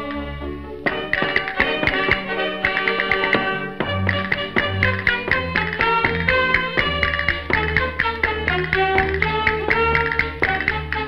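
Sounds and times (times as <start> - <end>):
piano accompaniment: 0.0 - 11.0
sharp percussive clicks: 0.8 - 11.0.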